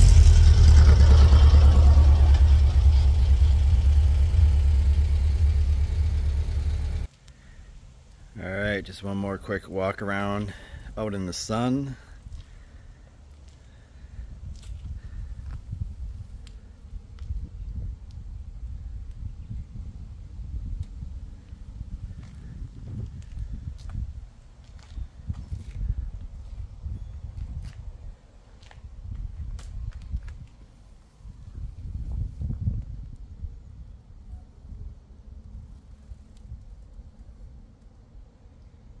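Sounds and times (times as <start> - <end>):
footsteps on pavement: 12.3 - 12.6, 13.3 - 13.8, 14.5 - 15.6, 22.1 - 24.0, 24.6 - 26.6
wind rumble on microphone: 13.9 - 38.3.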